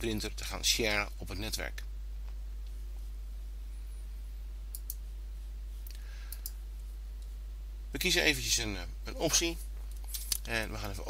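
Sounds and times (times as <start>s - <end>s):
low electrical hum: 0.0s - 11.0s
computer mouse clicks: 4.7s - 5.0s.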